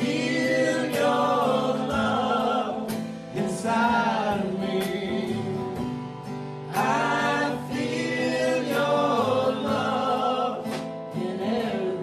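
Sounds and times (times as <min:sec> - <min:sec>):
men singing together: 0:00.0 - 0:06.0, 0:06.7 - 0:12.0
acoustic guitar: 0:00.0 - 0:12.0.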